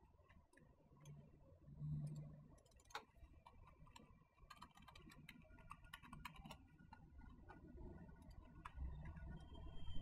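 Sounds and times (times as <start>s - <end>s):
computer mouse click: 2.0s - 6.6s.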